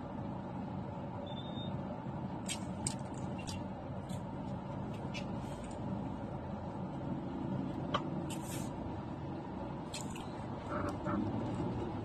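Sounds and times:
traffic rumble: 0:00.0 - 0:12.0
car engine from inside cabin: 0:09.3 - 0:12.0.

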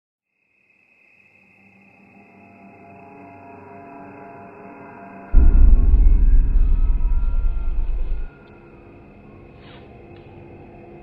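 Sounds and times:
low drone of held tones: 0:05.4 - 0:08.4.

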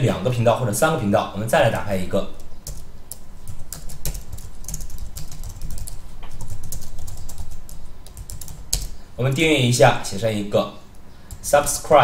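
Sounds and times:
computer keyboard typing: 0:02.4 - 0:09.0, 0:11.3 - 0:11.6.

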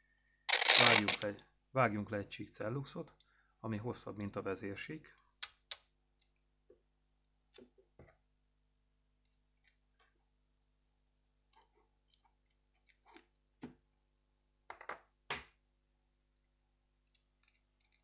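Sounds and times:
adhesive tape clicks and rustles: 0:00.5 - 0:01.3.

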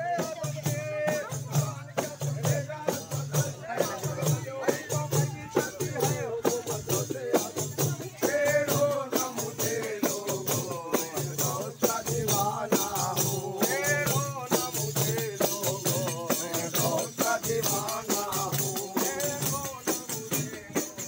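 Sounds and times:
frame drums beating: 0:00.0 - 0:21.0
men singing long phrases: 0:00.0 - 0:21.0.

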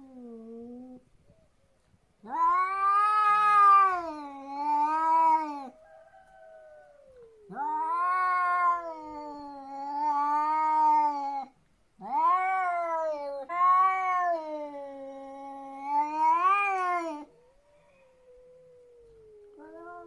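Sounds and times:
cats yowling: 0:02.2 - 0:05.8, 0:06.4 - 0:20.0
low cat moan: 0:12.1 - 0:20.0.

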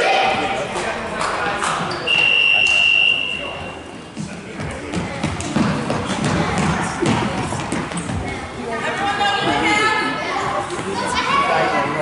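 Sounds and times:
voices in a gym: 0:00.0 - 0:12.0.

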